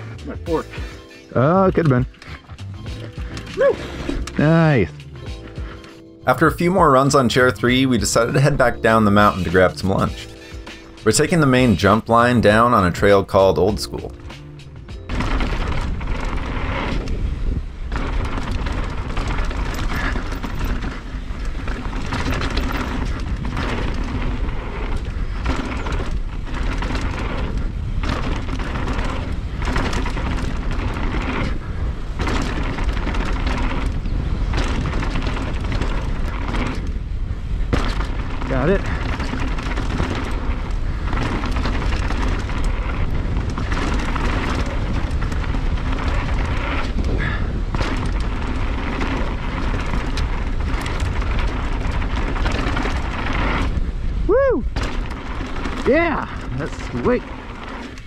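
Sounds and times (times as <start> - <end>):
tyre noise on dirt: 0.0 - 58.0
wind buffeting microphone: 0.0 - 58.0
bike knocks and rattles: 0.5 - 58.0
whoop-like call: 54.3 - 54.7.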